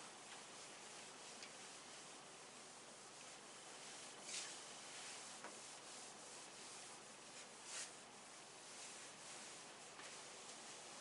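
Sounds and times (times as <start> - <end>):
cloth wiping whiteboard: 0.0 - 11.0.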